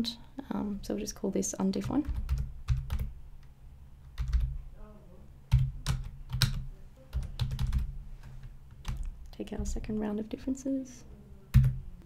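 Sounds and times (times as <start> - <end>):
computer keyboard typing: 1.8 - 3.2, 4.0 - 4.6, 5.5 - 9.1, 11.5 - 11.8.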